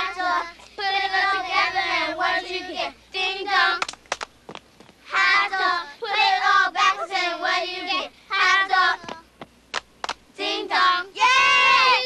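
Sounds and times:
girls singing a chant: 0.0s - 3.8s, 5.1s - 9.3s, 10.4s - 12.0s
hand claps: 3.8s - 4.6s, 9.0s - 10.2s.

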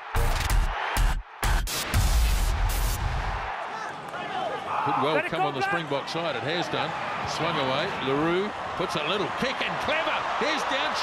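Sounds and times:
male commentator speaking: 4.3s - 11.0s.

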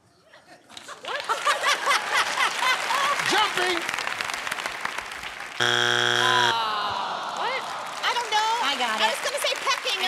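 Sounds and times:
game show wrong-answer buzzer: 5.6s - 6.6s.

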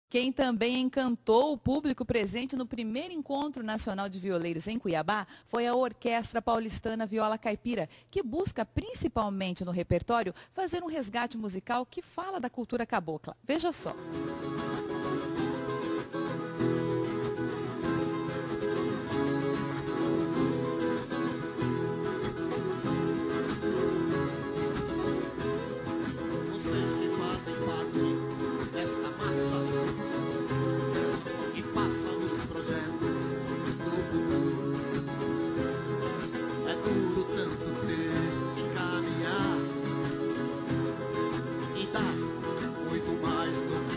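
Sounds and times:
plucked guitar ensemble: 13.8s - 43.9s.

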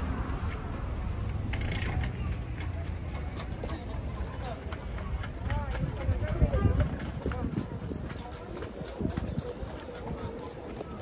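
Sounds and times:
passers-by talking: 0.0s - 11.0s
footsteps on paving stones: 0.3s - 11.0s.

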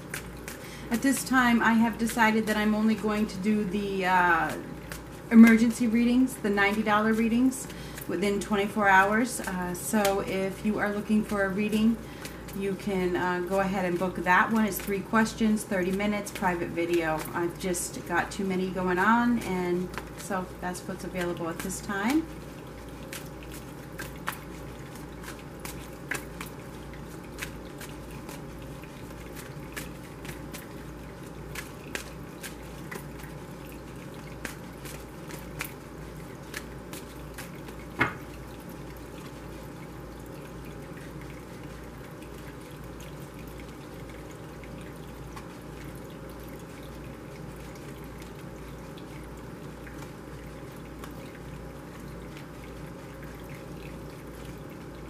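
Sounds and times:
faint background hum: 0.0s - 55.0s.

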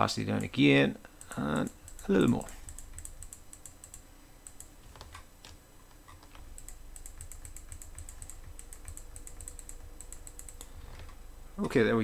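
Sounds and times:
computer keys and mouse clicking: 0.3s - 0.6s, 1.2s - 11.8s.

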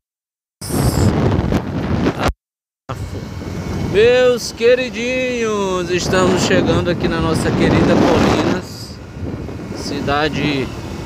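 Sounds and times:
road noise: 0.6s - 2.3s, 2.9s - 11.0s
wind buffeting microphone: 0.6s - 2.3s, 2.9s - 11.0s
motorcycle engine: 2.9s - 11.0s.

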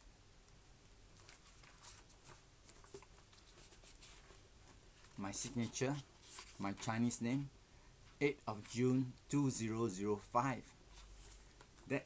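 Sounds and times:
book pages rustling: 1.2s - 7.1s, 10.9s - 11.9s.

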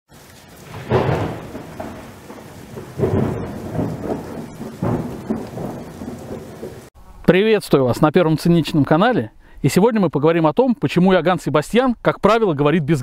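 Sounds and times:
rain hiss: 0.1s - 7.3s
rumbling thunder crashes: 0.4s - 6.9s.

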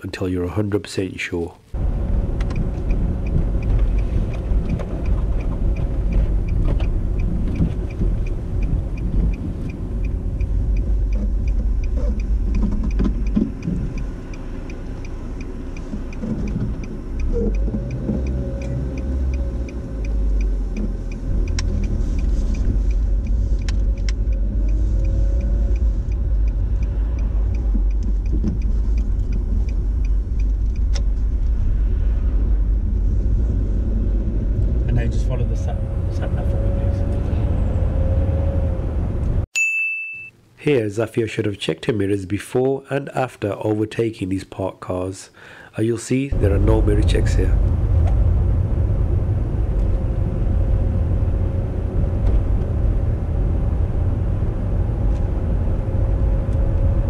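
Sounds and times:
car engine and road rumble: 1.4s - 39.5s, 46.3s - 57.0s
turn signal ticking: 1.7s - 31.7s.

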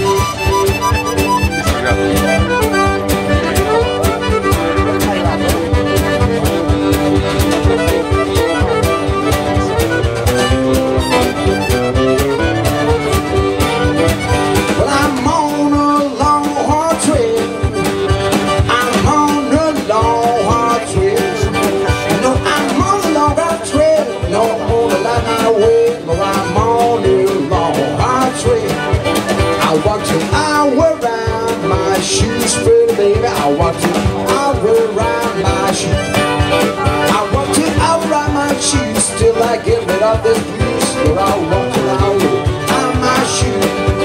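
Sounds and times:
piano accordion: 0.0s - 16.1s
drums keeping a steady beat: 0.0s - 44.0s
strummed acoustic guitar: 0.0s - 44.0s.

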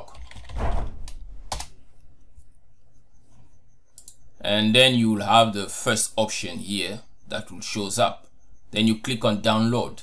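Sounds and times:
keyboard key presses: 0.0s - 1.8s.

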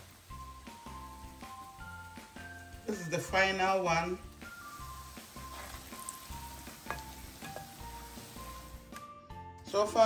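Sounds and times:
dough sizzling in hot oil: 0.0s - 9.0s
soft background music: 0.0s - 10.0s.

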